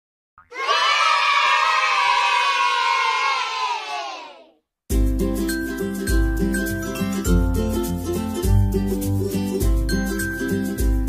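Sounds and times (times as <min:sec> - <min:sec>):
children cheering: 0:00.5 - 0:04.5.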